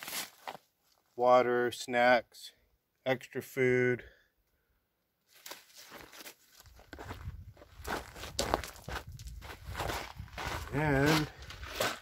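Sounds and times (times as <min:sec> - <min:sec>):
footsteps crunching on gravel: 0:05.3 - 0:12.0.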